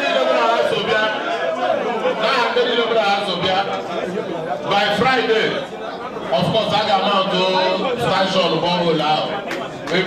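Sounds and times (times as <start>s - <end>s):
crowd chatter: 0.0s - 10.0s
man speaking into a microphone: 0.0s - 10.0s.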